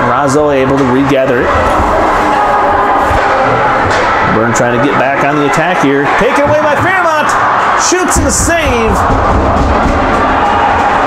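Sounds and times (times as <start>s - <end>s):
crowd murmur: 0.8s - 11.0s.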